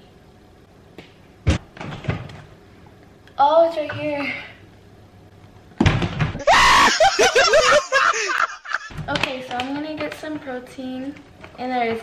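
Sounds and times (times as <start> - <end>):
person screaming: 6.4 - 8.5.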